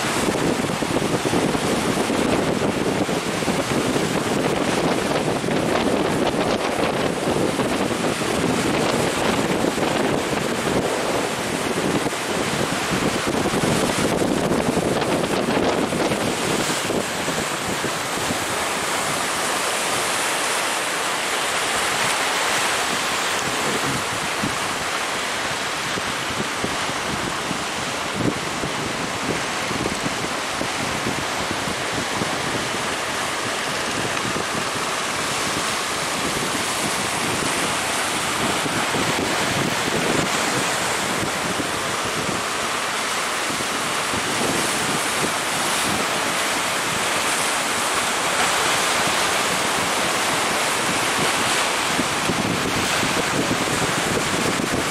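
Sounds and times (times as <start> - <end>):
sea surf breaking: 0.0 - 54.9
wind on microphone: 0.0 - 54.9.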